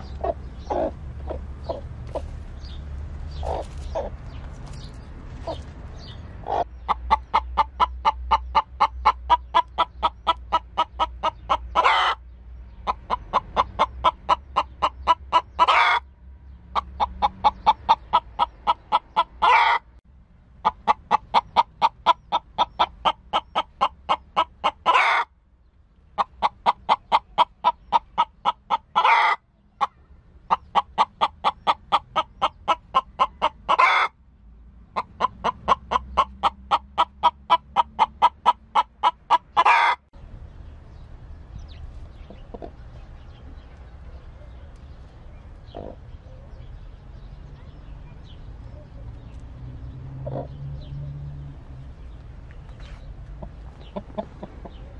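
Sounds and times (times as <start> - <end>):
hen clucking: 0.0 - 16.1, 16.7 - 20.0, 20.6 - 25.3, 26.1 - 34.2, 35.0 - 40.1, 42.0 - 44.7, 45.6 - 46.2, 50.2 - 50.6, 52.5 - 54.9.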